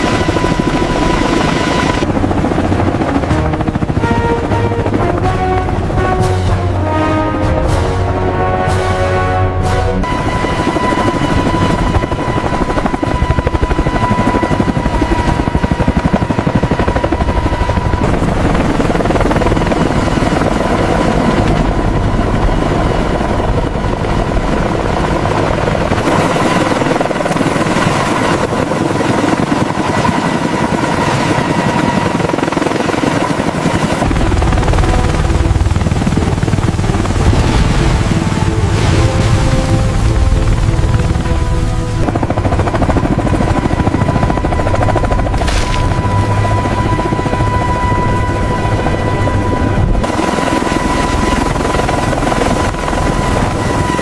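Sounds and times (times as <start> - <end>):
helicopter rotor chop: 0.0 - 54.0
turbine whine: 10.0 - 54.0.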